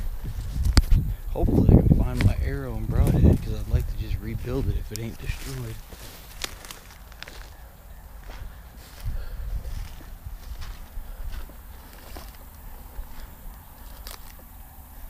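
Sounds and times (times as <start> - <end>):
footsteps through tall grass: 0.0 - 15.0.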